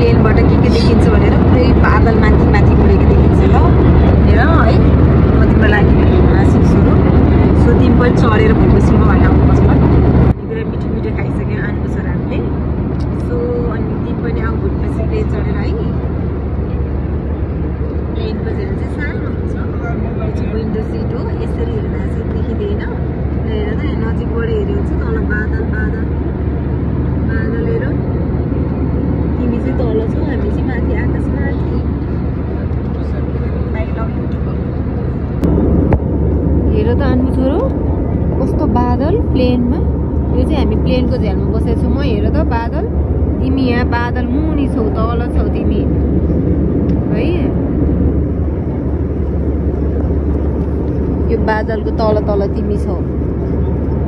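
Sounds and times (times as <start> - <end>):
airliner cabin rumble: 0.0 - 54.0
faint passenger voices: 0.0 - 54.0.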